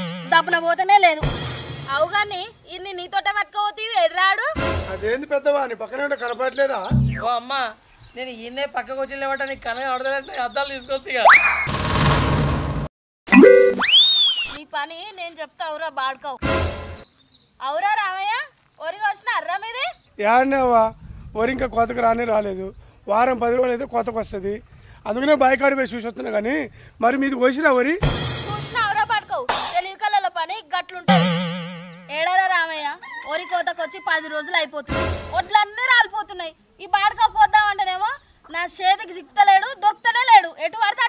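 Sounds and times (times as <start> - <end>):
dense rattling burst: 11.7 - 12.9
sliding whistle: 13.4 - 14.6
rooster crowing: 33.0 - 34.7.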